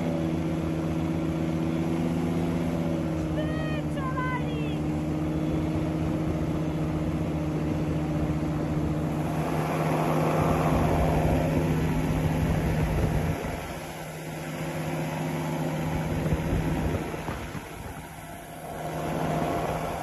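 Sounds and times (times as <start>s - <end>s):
microlight engine and propeller drone: 0.0s - 20.0s.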